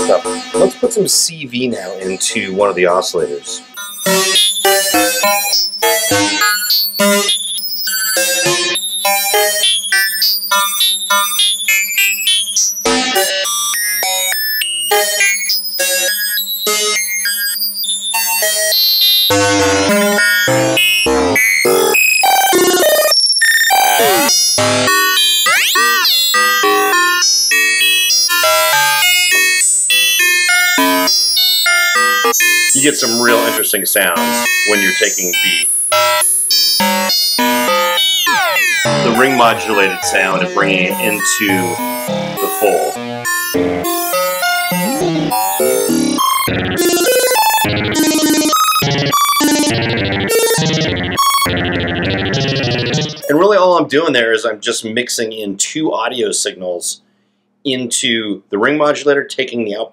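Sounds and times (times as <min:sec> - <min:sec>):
modular synth notes: 0:19.3 - 0:23.1, 0:23.7 - 0:27.0, 0:32.0 - 0:53.4
synth pitch glides: 0:36.8 - 0:53.3
low synth drone: 0:44.8 - 0:53.2.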